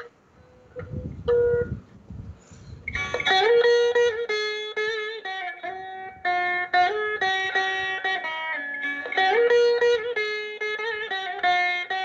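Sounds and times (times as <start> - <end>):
veena playing: 2.5 - 12.0.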